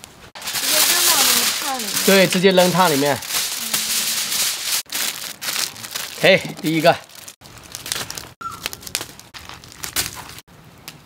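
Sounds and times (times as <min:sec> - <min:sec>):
aluminium foil crinkling: 0:00.4 - 0:10.4.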